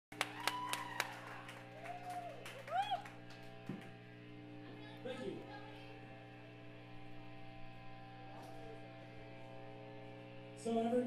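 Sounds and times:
amplifier electric hum: 0.1 - 11.0.

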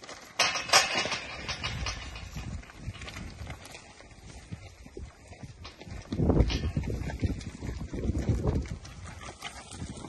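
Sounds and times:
hooves thudding on dirt: 0.0 - 10.0.

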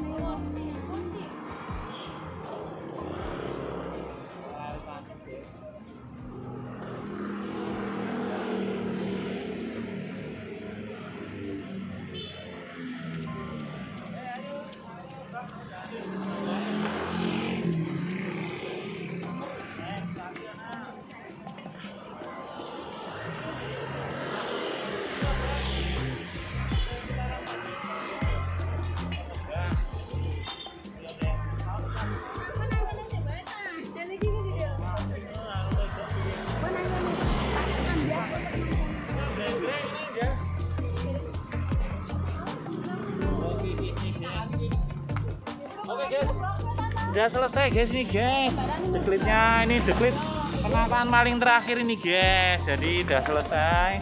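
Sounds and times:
music playing: 0.0 - 10.4, 12.0 - 54.0
indistinct voices: 0.0 - 54.0
motorbikes passing: 0.0 - 54.0.

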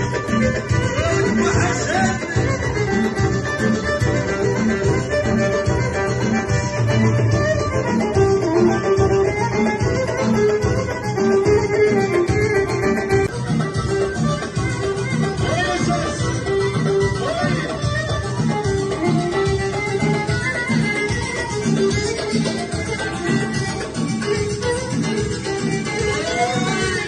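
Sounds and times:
drum kit beat: 0.0 - 27.0
hand drum: 0.0 - 27.0
keyboard: 0.0 - 27.0
violin melody: 0.0 - 27.0.

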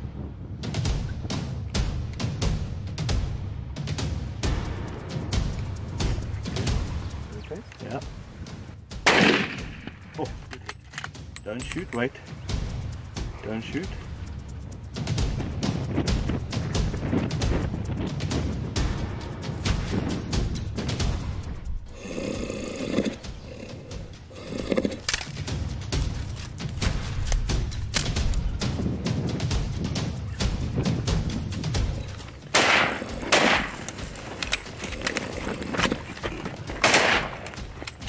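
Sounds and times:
background music with drum beat: 0.5 - 38.0
rifle shot: 9.0 - 10.1, 32.5 - 34.5, 36.8 - 37.6
buffalo bellowing: 21.9 - 25.1.

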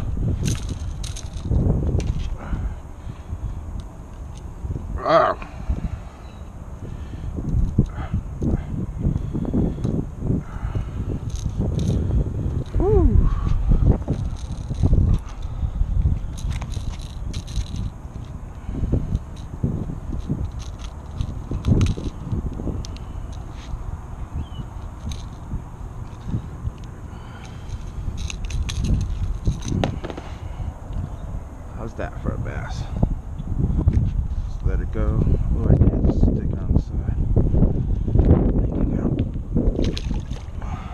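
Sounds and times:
microphone handling rumble: 0.0 - 40.9
pliers clicking and scraping: 20.2 - 23.5, 26.0 - 30.2.

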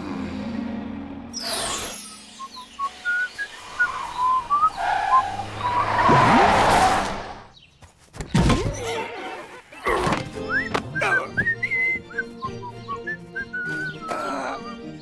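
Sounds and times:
chirping whistle-like tones: 1.4 - 7.3, 10.4 - 14.2.

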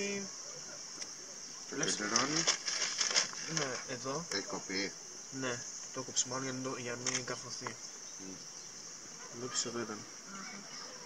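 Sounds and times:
cicadas buzzing: 0.0 - 11.0
people talking: 1.7 - 2.6, 3.4 - 8.4.

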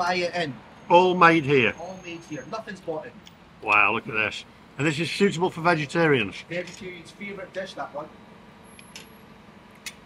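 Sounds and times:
low steady background hum: 0.0 - 10.0.

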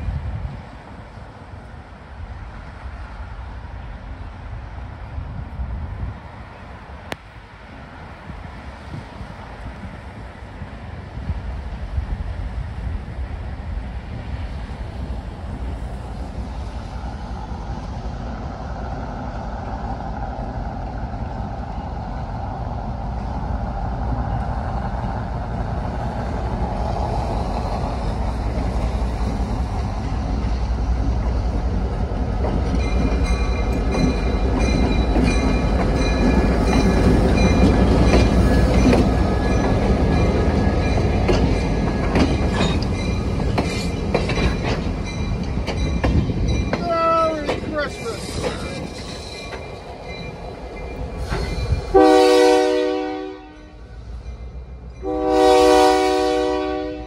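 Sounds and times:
locomotive engine rumble: 0.0 - 57.0
train wheels clacking: 27.0 - 52.0
wheels squealing on rails: 32.4 - 56.1.

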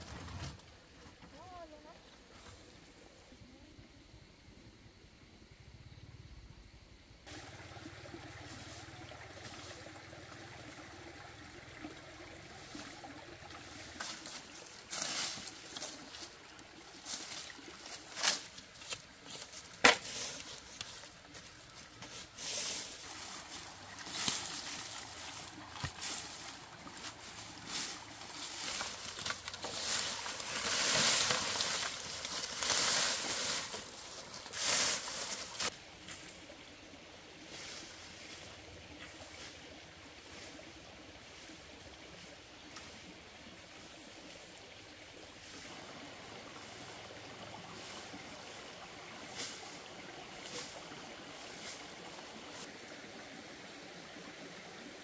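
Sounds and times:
dry plant stalks rustling: 12.6 - 36.4
stalk snapping: 19.7 - 21.0.

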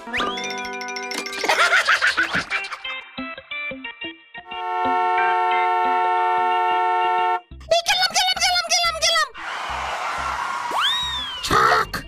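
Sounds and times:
high-pitched cartoon voice: 11.4 - 12.0.

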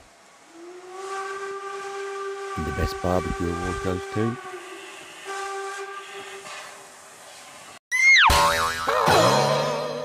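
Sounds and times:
wavering tone: 0.4 - 7.0
falling boing sound effect: 7.9 - 10.0.

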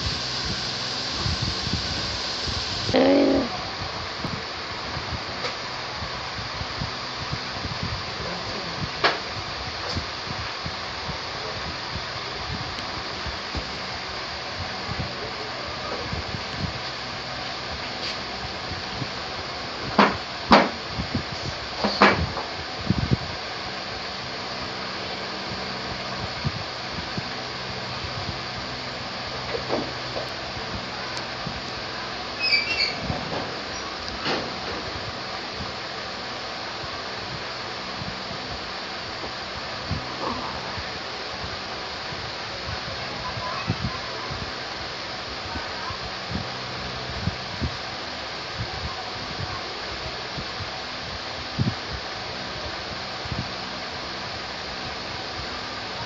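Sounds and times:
steady background hiss: 0.0 - 56.0.

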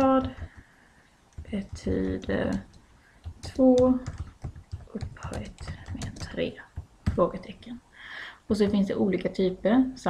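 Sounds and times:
typing on a computer keyboard: 0.0 - 0.7, 1.3 - 7.3.

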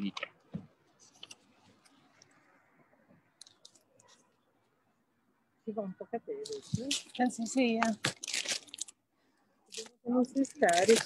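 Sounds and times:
crackling broken-up audio: 0.0 - 4.5, 6.4 - 9.0.

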